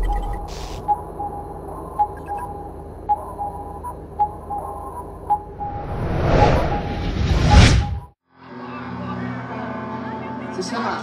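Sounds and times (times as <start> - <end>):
low electronic hum: 0.0 - 5.9.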